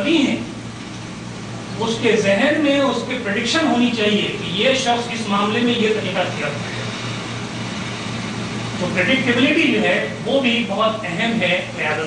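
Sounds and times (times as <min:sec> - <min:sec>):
steady hiss: 0:00.0 - 0:12.0
man speaking: 0:01.8 - 0:06.7, 0:08.8 - 0:12.0.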